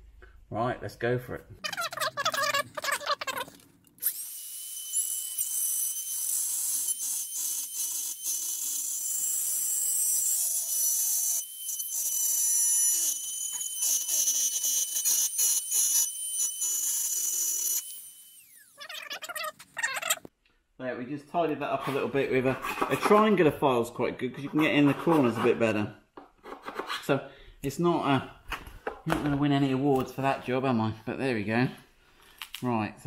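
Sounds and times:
rotary tool cutting plastic: 0:01.8 - 0:20.3
rotary tool whining: 0:04.0 - 0:20.3.

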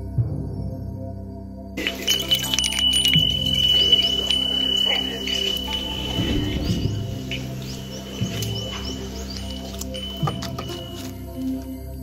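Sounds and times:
background music: 0:00.0 - 0:12.0
wind chime bells jingling: 0:01.8 - 0:12.0.

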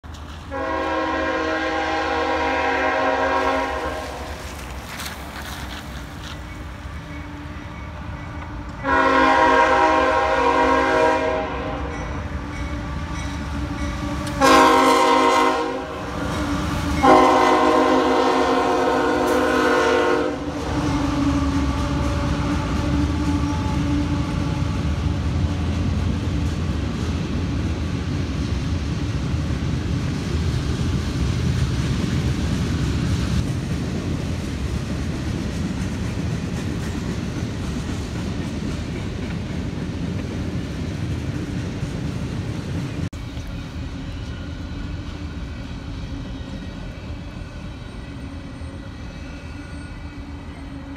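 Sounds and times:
freight train rumbling past: 0:00.0 - 0:50.9
locomotive air horn: 0:00.5 - 0:04.5, 0:08.8 - 0:12.0, 0:14.0 - 0:24.9.

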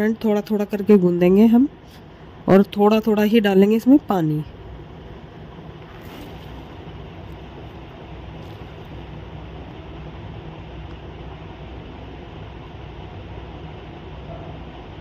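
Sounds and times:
low rumbling background noise: 0:00.0 - 0:15.0
hand rustling dough in bowl: 0:05.7 - 0:09.0.

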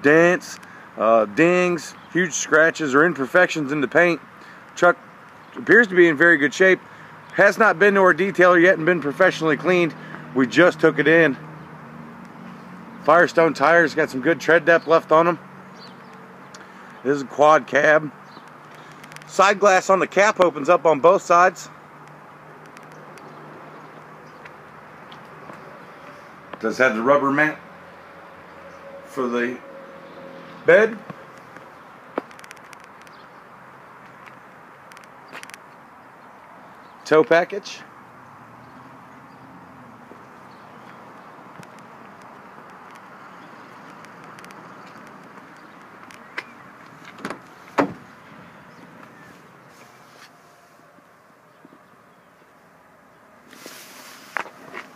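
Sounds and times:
truck door latch click: 0:47.1 - 0:48.0.

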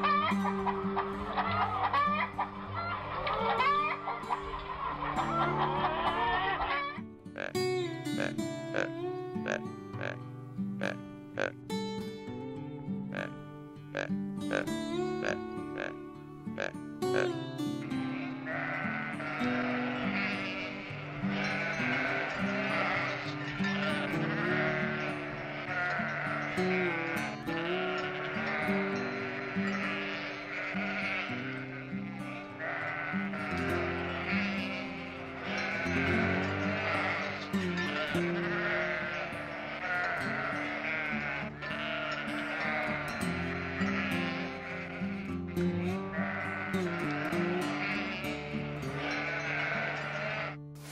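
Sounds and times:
sheep bleating: 0:00.0 - 0:12.2, 0:13.0 - 0:50.9
background music: 0:00.0 - 0:50.9
plucked notes: 0:00.0 - 0:50.9.

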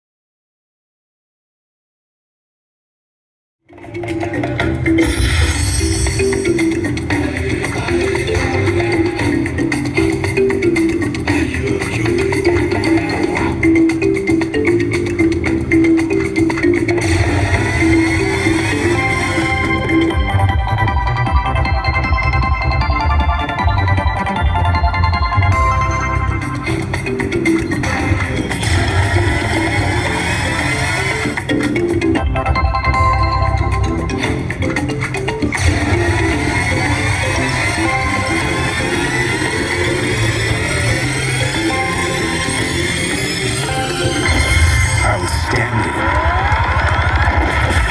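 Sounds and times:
rhythmic percussive slot machine music: 0:03.7 - 0:47.9.

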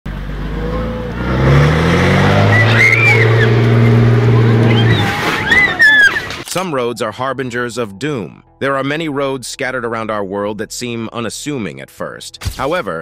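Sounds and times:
diesel bus engine revving: 0:00.1 - 0:06.3
people shouting: 0:02.1 - 0:06.4.

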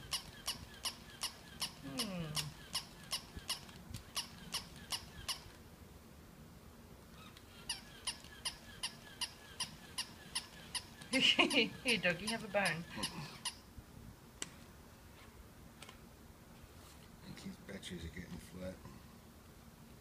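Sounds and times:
toy dog clicking squeak: 0:00.0 - 0:01.8, 0:02.4 - 0:05.5, 0:07.3 - 0:13.6.

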